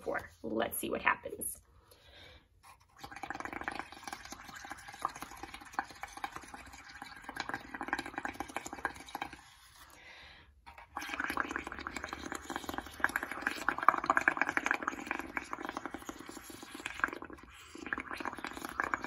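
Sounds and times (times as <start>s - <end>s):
bubbling through a straw: 2.6s - 19.0s.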